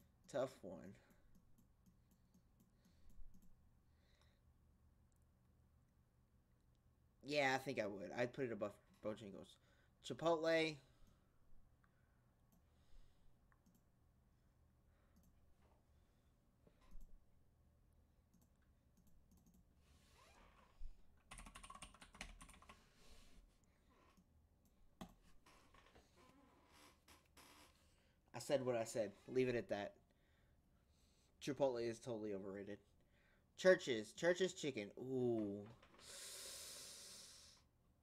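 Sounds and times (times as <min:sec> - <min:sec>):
keyboard typing: 0:01.3 - 0:03.6, 0:18.3 - 0:19.6, 0:21.2 - 0:22.8
man's breathy hiss of breath: 0:36.0 - 0:37.6.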